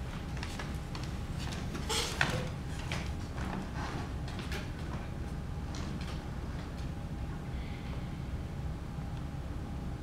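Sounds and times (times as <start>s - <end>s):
light footsteps on wooden stage: 0.0s - 6.9s
chair creak or scrape: 1.8s - 2.5s.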